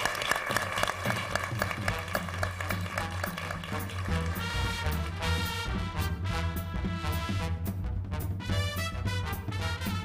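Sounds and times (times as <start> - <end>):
audience applauding: 0.0 - 5.3
upbeat theme music: 0.0 - 10.0.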